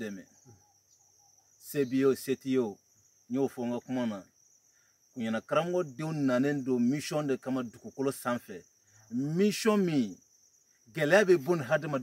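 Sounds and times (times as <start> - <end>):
man speaking: 0.0 - 0.3, 1.6 - 4.3, 5.2 - 10.2, 10.9 - 12.0
insects trilling: 0.0 - 12.0.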